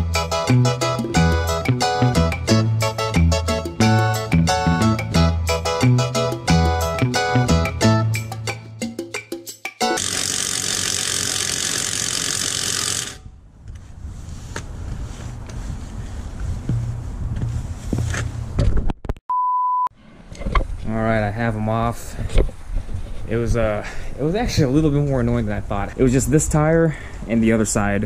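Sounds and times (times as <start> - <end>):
impact wrench buzzing: 9.9 - 13.4
short pure-tone bleep: 19.3 - 19.9
man talking: 20.8 - 22.2, 23.3 - 28.0.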